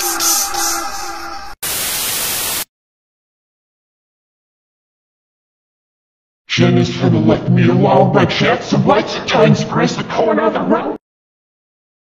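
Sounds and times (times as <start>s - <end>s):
electronic music: 0.0s - 1.6s
loud static hiss: 1.6s - 2.7s.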